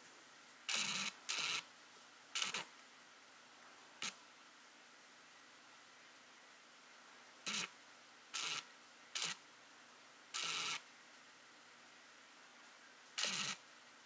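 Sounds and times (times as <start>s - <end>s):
faint steady hiss: 0.0s - 14.0s
lens focusing motor whirring: 0.7s - 1.6s, 2.4s - 2.7s, 7.5s - 7.7s, 8.4s - 9.4s, 10.4s - 10.8s, 13.2s - 13.6s.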